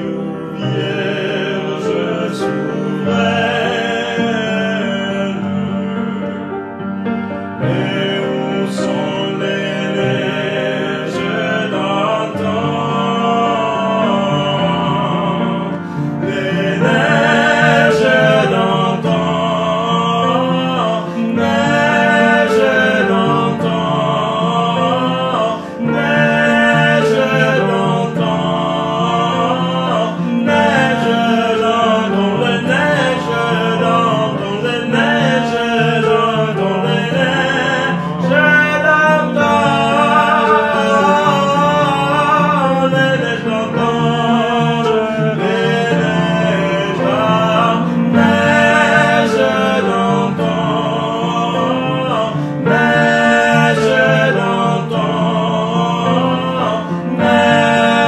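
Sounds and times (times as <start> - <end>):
person singing: 0.0 - 58.0
upright piano: 0.0 - 58.0.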